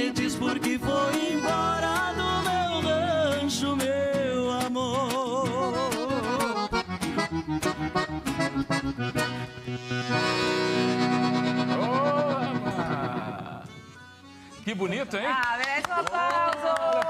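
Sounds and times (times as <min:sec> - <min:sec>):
accordion with band: 0:00.0 - 0:15.3.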